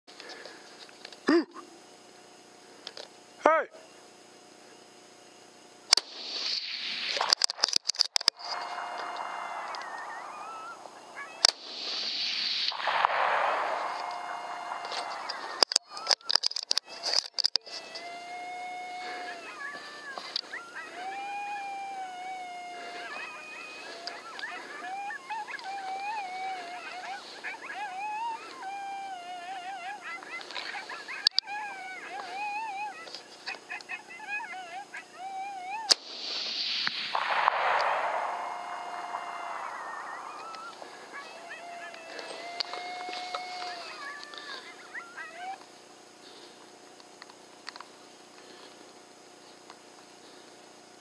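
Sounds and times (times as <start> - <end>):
coyote howls: 8.3 - 12.1, 12.7 - 36.0, 37.1 - 45.6
coyote yips: 8.5 - 11.5, 17.8 - 36.0, 37.7 - 45.6.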